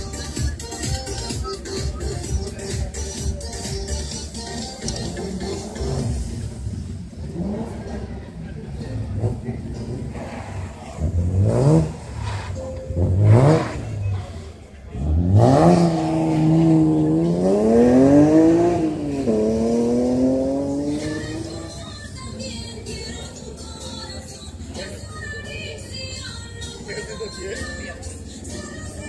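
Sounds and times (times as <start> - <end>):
rally car engine revving: 4.8 - 21.9.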